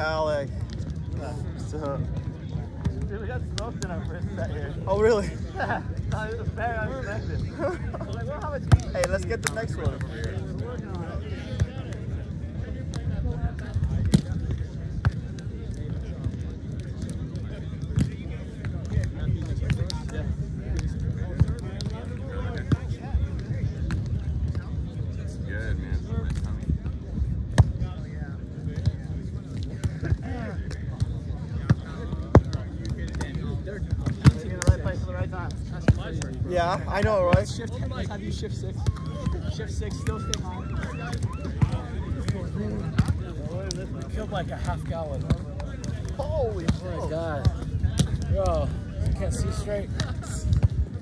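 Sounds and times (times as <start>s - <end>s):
faint voices: 0.0s - 51.0s
hands slapping volleyball: 34.0s - 34.9s.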